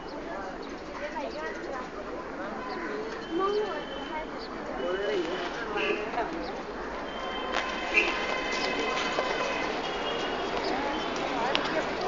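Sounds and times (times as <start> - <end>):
people talking indistinctly: 0.0 - 12.0
steady background noise: 0.0 - 12.0.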